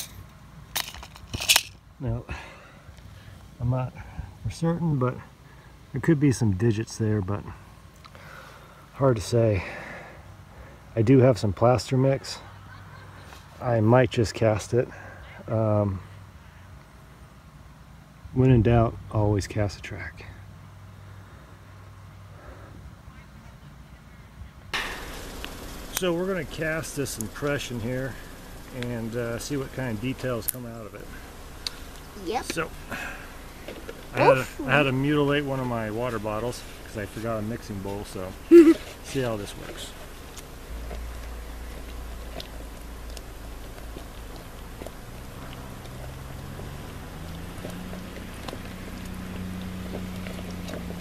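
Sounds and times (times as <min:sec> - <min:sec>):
faint outdoor background: 0:00.0 - 0:51.0
brief metallic rattle: 0:24.8 - 0:26.1
steady hiss: 0:24.8 - 0:51.0.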